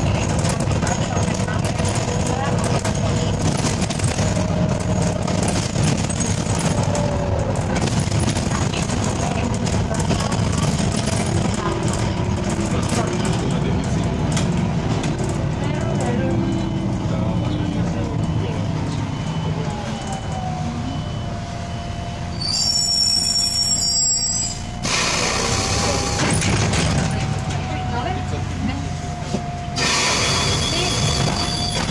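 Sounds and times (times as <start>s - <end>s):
bus engine and road rumble: 0.0s - 31.9s
brief high squeal: 22.3s - 25.0s, 29.8s - 31.9s.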